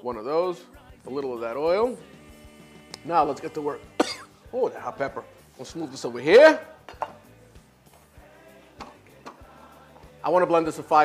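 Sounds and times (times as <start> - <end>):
kitchen room sound: 0.0 - 11.0
soft background music: 0.0 - 11.0.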